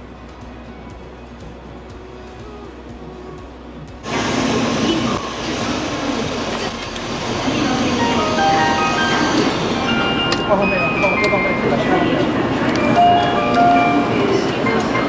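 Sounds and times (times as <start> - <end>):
loud steady rushing noise: 0.0 - 15.0
electronic chime melody: 8.0 - 12.2, 12.8 - 15.0.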